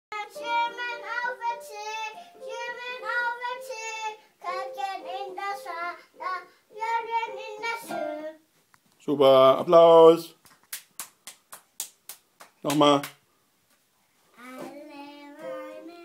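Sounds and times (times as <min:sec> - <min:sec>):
toddler singing: 0:00.1 - 0:08.4, 0:14.4 - 0:16.0.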